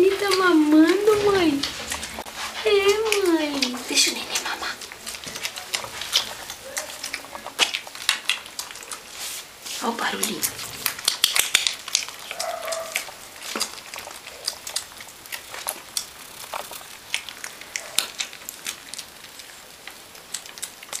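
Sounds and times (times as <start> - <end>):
puppies suckling wet smacking: 0.0 - 21.0.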